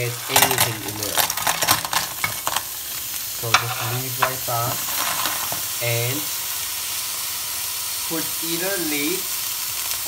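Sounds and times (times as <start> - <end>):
clams sizzling in a hot pot: 0.0 - 10.0.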